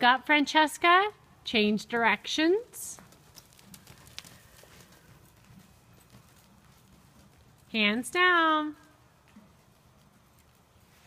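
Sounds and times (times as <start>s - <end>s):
horse hoofbeats on soft dirt: 1.2s - 11.0s.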